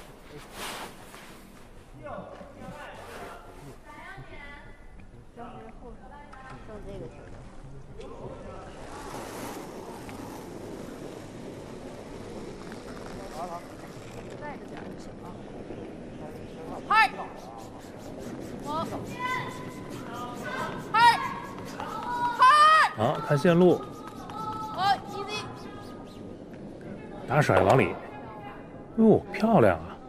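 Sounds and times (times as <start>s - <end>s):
arena ambience hiss: 0.0s - 4.6s, 5.6s - 30.0s
players shouting short calls: 18.6s - 25.9s.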